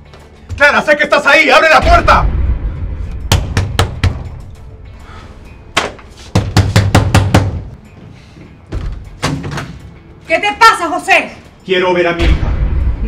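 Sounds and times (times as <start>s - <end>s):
background music: 0.0s - 13.0s
fist pounding on wooden door: 3.3s - 4.3s, 6.4s - 7.7s.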